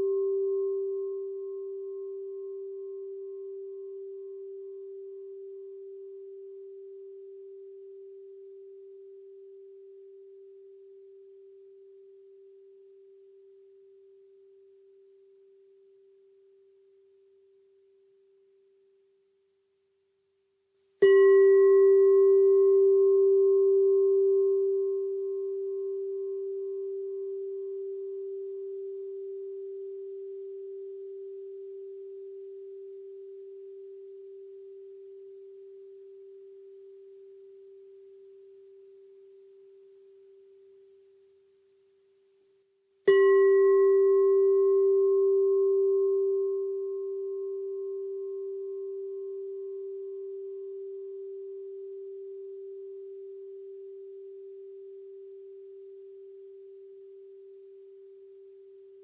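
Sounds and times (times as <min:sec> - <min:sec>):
singing bowl struck and ringing: 0:00.0 - 0:14.0, 0:21.0 - 0:41.0, 0:43.1 - 0:59.0.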